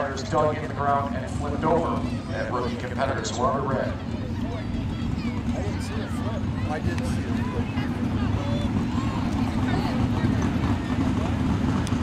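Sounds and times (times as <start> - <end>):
car engine idling: 0.0 - 12.0
faint voices: 0.0 - 12.0.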